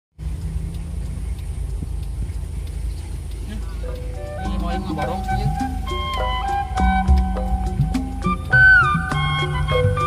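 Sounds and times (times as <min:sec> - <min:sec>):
vehicle engine and road rumble: 0:00.1 - 0:10.0.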